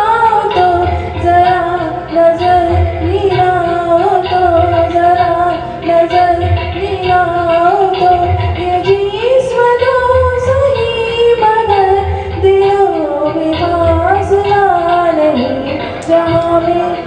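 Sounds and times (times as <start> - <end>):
woman singing into microphone: 0.0 - 17.0.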